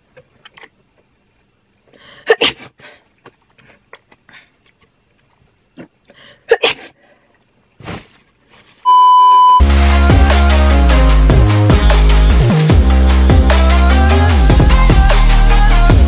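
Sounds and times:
short steady beep: 0:08.9 - 0:09.6
electronic music with heavy beat: 0:09.6 - 0:16.0.

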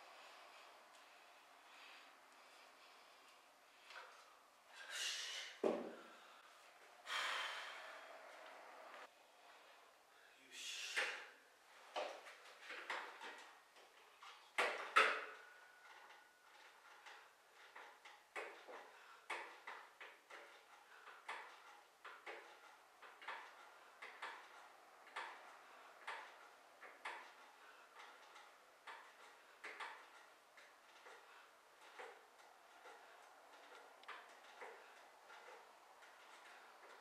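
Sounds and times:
man breathing sharply: 0:00.0 - 0:08.5
knocks on a bench: 0:05.6 - 0:06.0.

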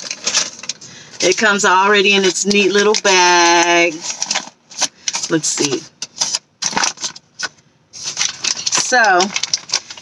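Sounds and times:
paper bag crinkling and rustling: 0:00.0 - 0:10.0.

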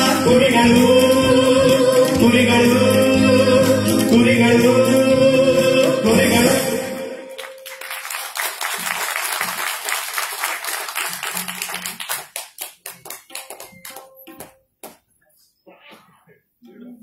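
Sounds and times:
audience applauding: 0:07.4 - 0:14.5.

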